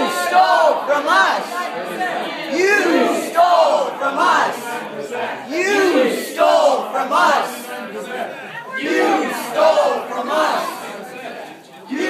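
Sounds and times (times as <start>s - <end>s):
crowd chanting in unison: 0.0s - 12.0s.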